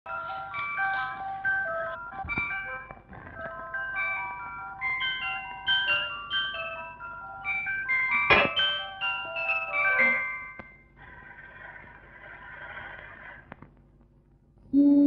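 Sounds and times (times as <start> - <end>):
bright chime-like melody: 0.1 - 11.0
sharp percussive hit: 8.3 - 8.8.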